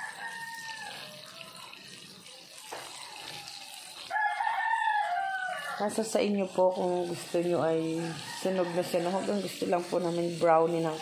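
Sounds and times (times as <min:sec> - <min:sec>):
rooster crowing: 0:00.0 - 0:01.8, 0:02.7 - 0:06.0, 0:07.9 - 0:09.5
oil sizzling deep-frying: 0:00.0 - 0:11.0.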